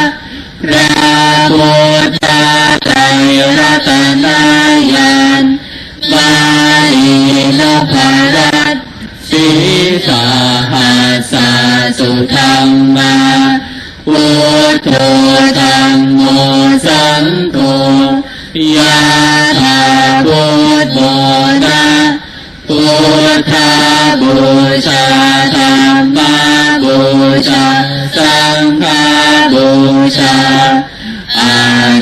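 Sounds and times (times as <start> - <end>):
voices chanting: 0.0 - 32.0.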